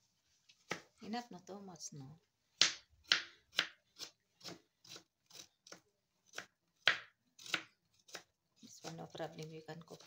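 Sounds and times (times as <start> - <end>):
knife chopping on cutting board: 2.6 - 9.0.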